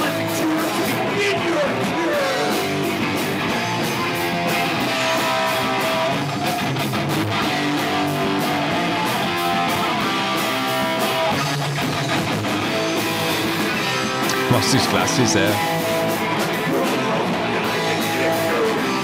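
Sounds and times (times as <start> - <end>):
bass guitar: 0.0 - 19.0
electric guitars: 0.0 - 19.0
punk rock band playing: 0.0 - 19.0.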